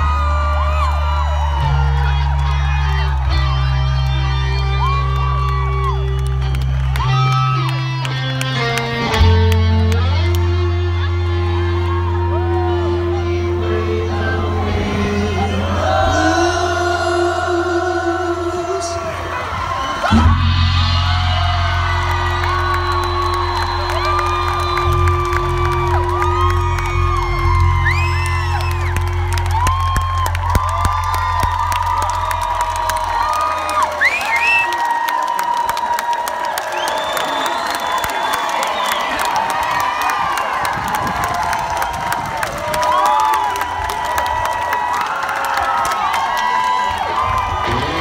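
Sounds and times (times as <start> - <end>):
crowd cheering and whooping: 0.0 - 48.0
rock band chord ringing: 20.1 - 27.8.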